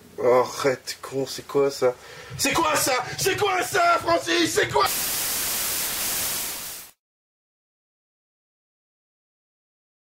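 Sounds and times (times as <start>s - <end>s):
white-noise static hiss: 0.0s - 7.0s.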